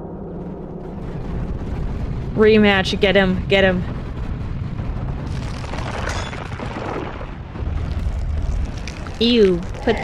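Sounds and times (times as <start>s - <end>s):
deep battle rumble: 0.0s - 10.0s.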